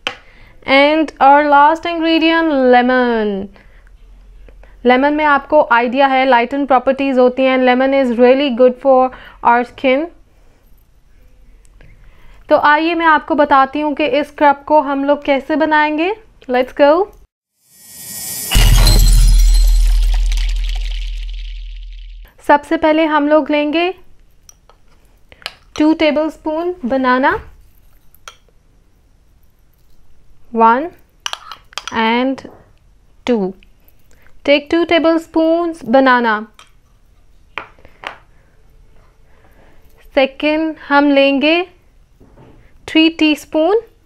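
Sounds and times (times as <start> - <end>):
rising whoosh: 17.8 - 22.2
glass shattering crash: 17.8 - 22.3
deep boom: 17.9 - 22.2.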